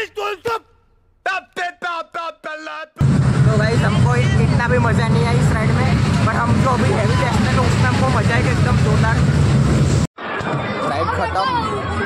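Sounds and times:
fairground ride rumbling: 3.0 - 12.0
many voices chattering: 10.2 - 12.0.

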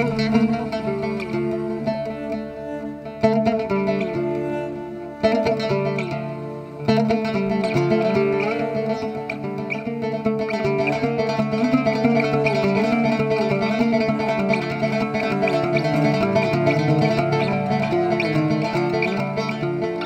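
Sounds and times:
bowed double bass: 0.0 - 20.0
plucked lute and acoustic guitar: 0.0 - 20.0.

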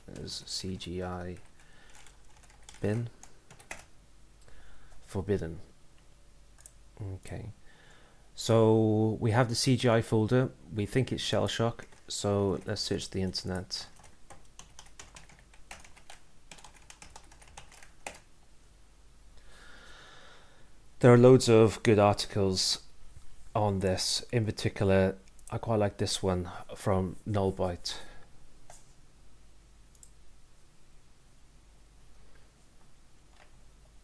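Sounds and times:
computer keyboard keystrokes: 1.4 - 3.9, 13.9 - 18.3.

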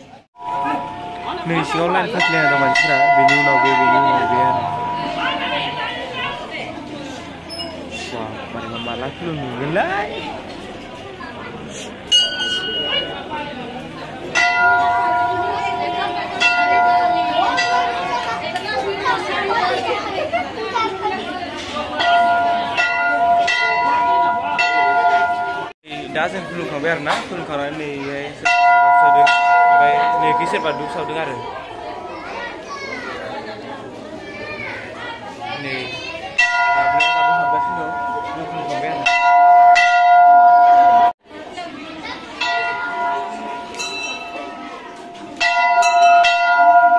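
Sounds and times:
crowd chatter: 0.0 - 46.9
temple bell ringing: 0.4 - 6.8, 12.1 - 19.8, 21.9 - 25.8, 28.3 - 32.6, 36.3 - 41.2, 42.2 - 46.9.

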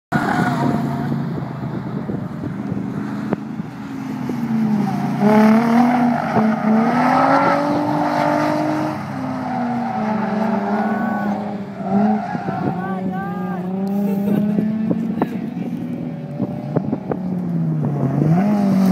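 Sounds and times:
car engine revving: 0.1 - 18.9.

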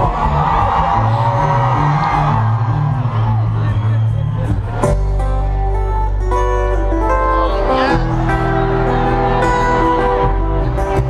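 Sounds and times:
picked guitar notes: 0.0 - 11.0.

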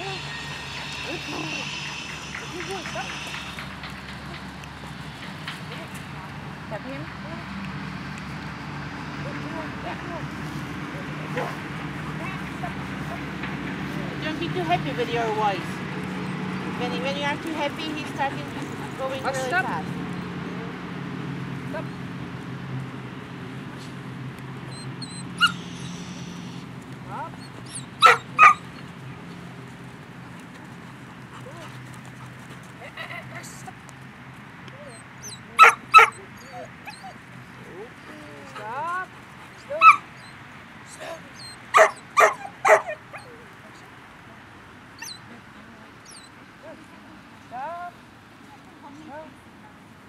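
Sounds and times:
dog whining: 0.0 - 3.7, 24.7 - 26.1, 27.2 - 28.8, 34.8 - 38.8, 39.6 - 43.4, 45.0 - 45.2, 46.0 - 46.3
dog barking: 11.3 - 11.6, 28.0 - 28.6, 35.6 - 36.2, 39.7 - 40.0, 41.7 - 43.3.

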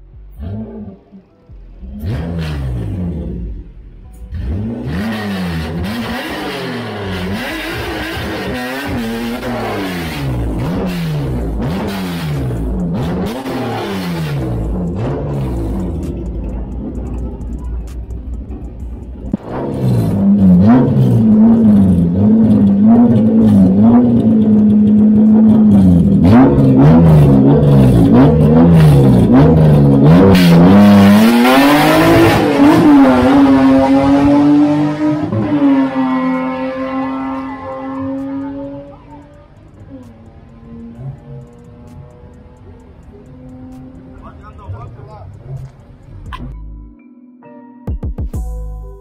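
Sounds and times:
car engine revving: 0.0 - 46.6.

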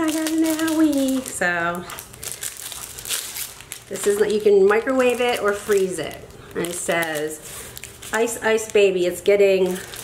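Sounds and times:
packaging rustling and crinkling: 0.0 - 10.0.

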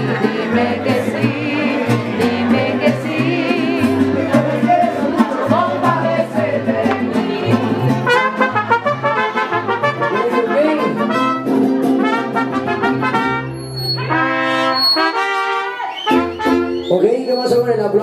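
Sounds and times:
held bass notes: 0.0 - 15.5
mariachi band playing: 0.0 - 18.0
trumpets: 8.0 - 17.6.

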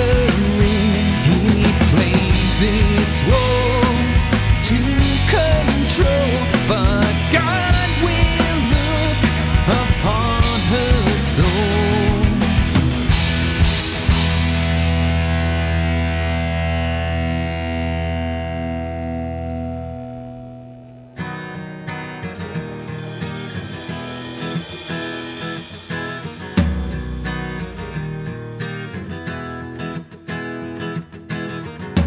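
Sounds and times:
guitar and bass chord ringing: 0.0 - 29.7
picked guitar notes: 0.0 - 32.0.

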